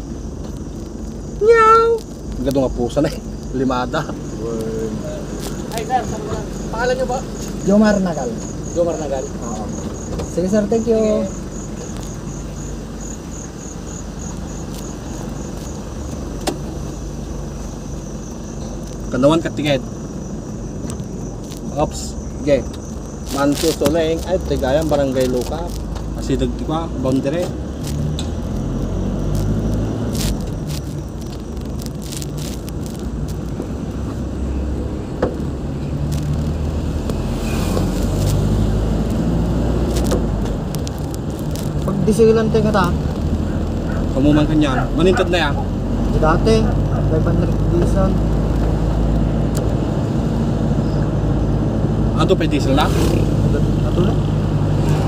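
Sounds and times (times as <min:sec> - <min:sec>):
crickets chirping: 0:00.0 - 0:55.0
road noise: 0:00.0 - 0:55.0
vehicle engine humming: 0:00.0 - 0:55.0.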